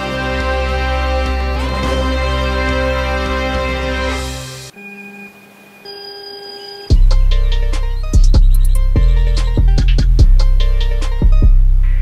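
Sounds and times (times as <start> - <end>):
music: 0.0 - 4.8, 6.8 - 12.0
electronic beep tones: 4.7 - 7.1
bass hit: 6.9 - 12.0.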